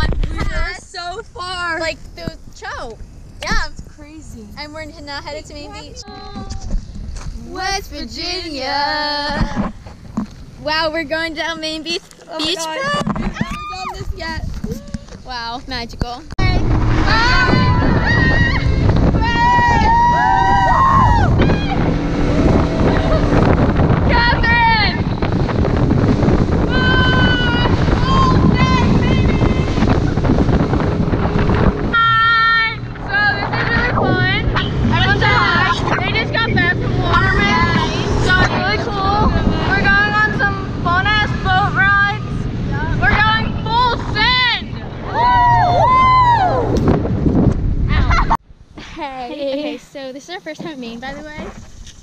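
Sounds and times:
wind buffeting microphone: 0:00.0 - 0:48.8, 0:49.4 - 0:52.0
motorboat engine and hull noise: 0:00.0 - 0:49.8, 0:50.4 - 0:52.0
girls squealing: 0:13.3 - 0:14.1
girl screaming: 0:13.4 - 0:14.0, 0:17.1 - 0:21.9, 0:26.7 - 0:29.3, 0:45.1 - 0:46.7.

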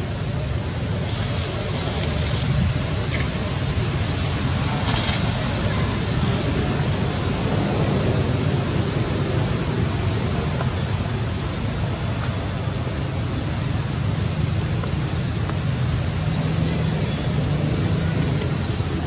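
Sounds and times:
dry leaves rustling: 0:00.0 - 0:08.6
wind rumbling on microphone: 0:00.0 - 0:19.0.

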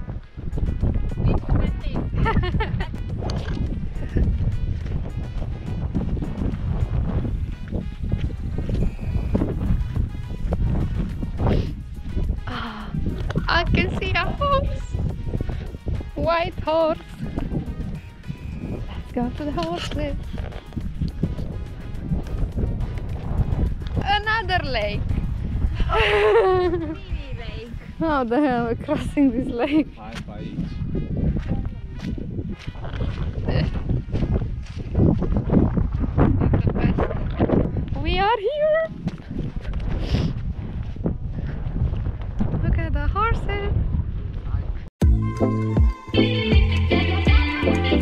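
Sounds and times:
background music: 0:00.0 - 0:34.4, 0:45.0 - 0:48.0
wind rumbling on microphone: 0:00.0 - 0:45.0.

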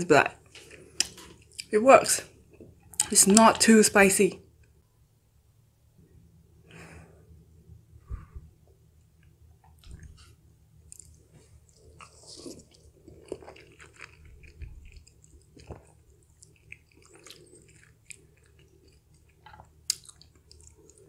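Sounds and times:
person chewing food: 0:09.2 - 0:21.0.

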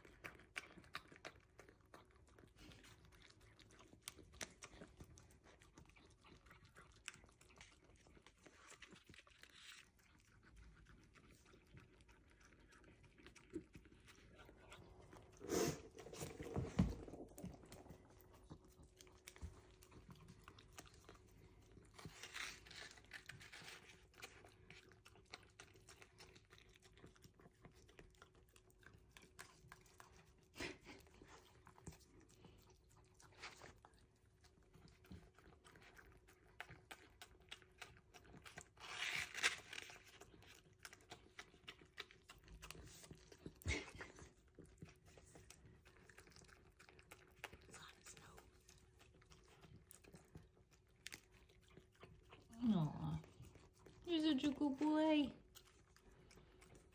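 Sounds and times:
dog licking wet smacking: 0:00.0 - 0:38.8, 0:39.8 - 0:56.9.

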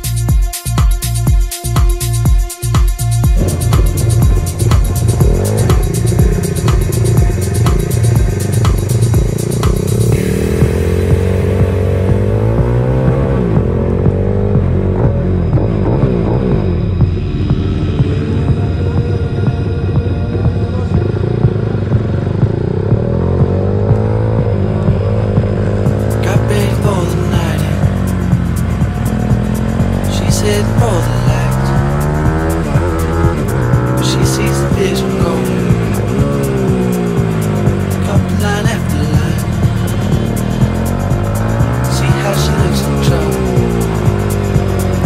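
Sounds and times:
electronic music with steady beat: 0:00.0 - 0:45.0
motorbike engine revving: 0:03.0 - 0:45.0.

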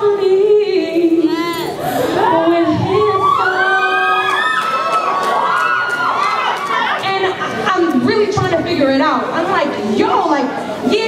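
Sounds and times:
audience cheering: 0:03.0 - 0:07.1.

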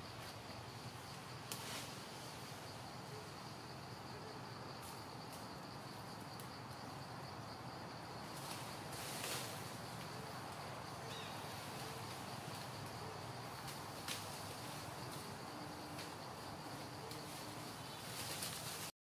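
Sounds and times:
insects droning: 0:00.0 - 0:18.9
soft outdoor hiss: 0:00.0 - 0:18.9.

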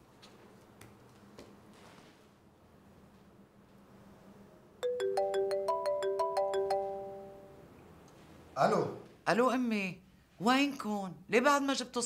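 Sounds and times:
phone ringtone bell melody: 0:04.8 - 0:07.7.

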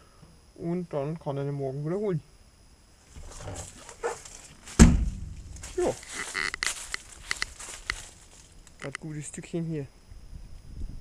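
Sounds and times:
low rumbling: 0:03.1 - 0:08.9
loud animal call: 0:05.8 - 0:06.7.

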